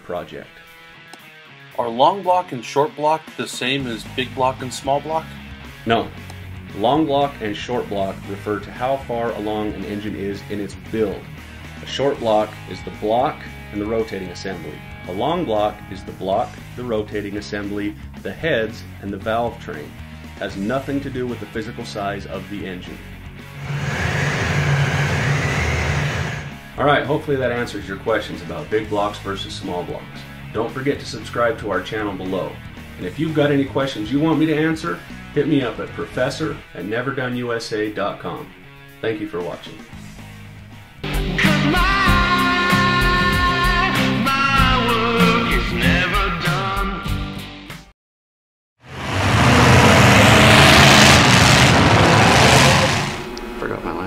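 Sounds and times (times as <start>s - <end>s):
supercharged engine running hard: 23.5s - 26.6s, 48.9s - 53.4s
wide rush of noise: 23.6s - 26.6s, 48.9s - 53.4s.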